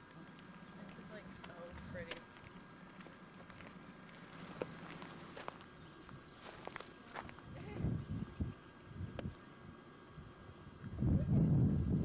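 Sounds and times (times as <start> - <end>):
footsteps on brick paving: 0.1 - 7.7.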